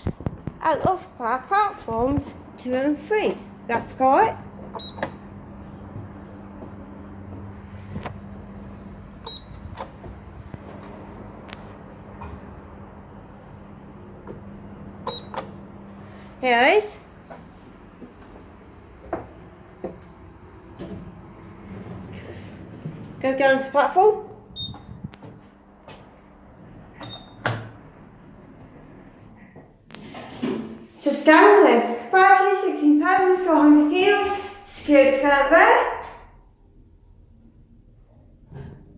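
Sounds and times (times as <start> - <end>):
steady low hum: 0.0 - 31.7
button beep: 24.6 - 24.9.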